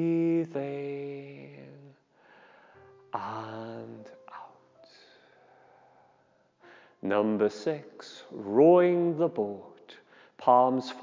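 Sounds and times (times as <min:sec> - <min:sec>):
whispery breath sounds: 0:02.2 - 0:02.9, 0:04.9 - 0:07.0.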